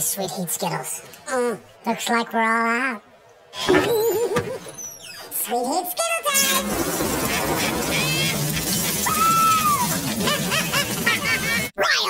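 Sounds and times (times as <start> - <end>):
rising and falling cry: 7.1 - 10.3.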